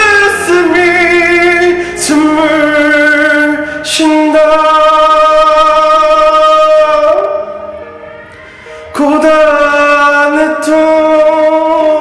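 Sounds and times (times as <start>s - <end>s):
man singing a slow ballad: 0.0s - 7.7s, 8.9s - 12.0s
karaoke backing track: 0.0s - 12.0s.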